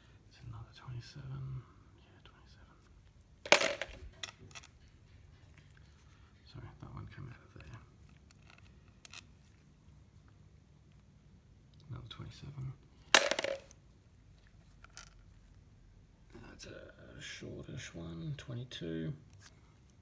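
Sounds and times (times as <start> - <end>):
light clicks and handling: 7.5 - 9.7.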